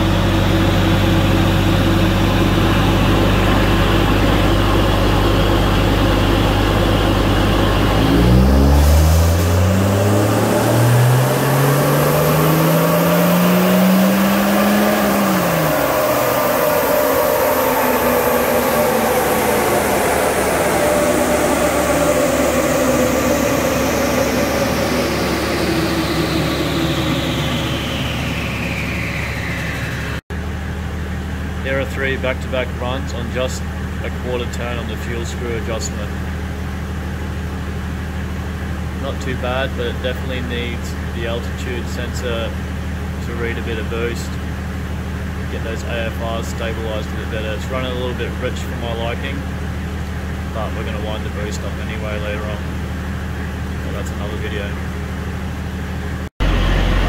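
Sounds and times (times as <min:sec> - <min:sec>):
diesel engine revving: 0:00.0 - 0:57.0
high whine of drivetrain: 0:00.0 - 0:57.0.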